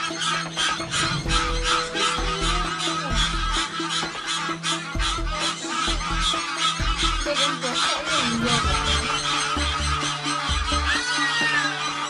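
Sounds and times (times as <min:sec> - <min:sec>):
background music: 0:00.0 - 0:12.0
geese honking rapidly: 0:00.0 - 0:12.0.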